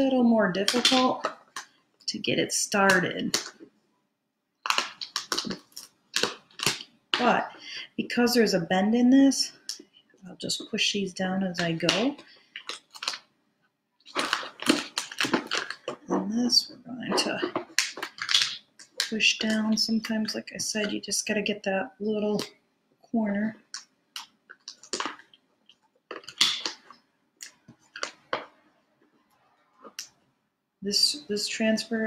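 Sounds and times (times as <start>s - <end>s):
tape crinkling rustle: 4.6s - 7.3s, 11.6s - 13.3s, 14.0s - 16.2s, 23.7s - 29.2s.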